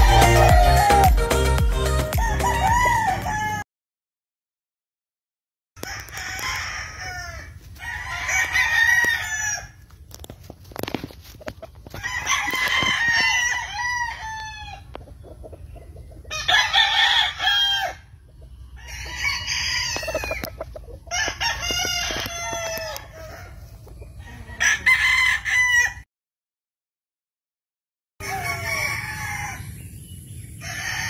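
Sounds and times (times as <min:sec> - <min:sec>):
roosters crowing: 0:00.0 - 0:03.6, 0:05.8 - 0:10.0, 0:10.8 - 0:15.2, 0:16.0 - 0:26.0, 0:28.2 - 0:31.0.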